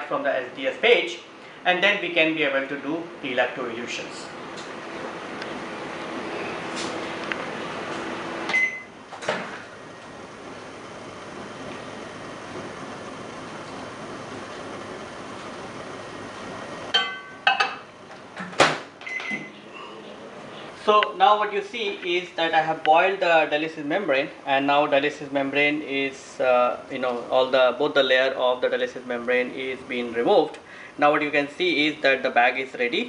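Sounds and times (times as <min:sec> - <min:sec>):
microwave oven humming: 0:00.0 - 0:33.0
microwave beep: 0:08.4 - 0:09.0, 0:19.0 - 0:19.7.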